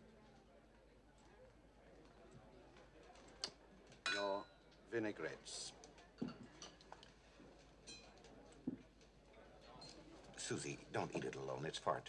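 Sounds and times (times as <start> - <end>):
tableware handled with light ticks: 6.0 - 7.1.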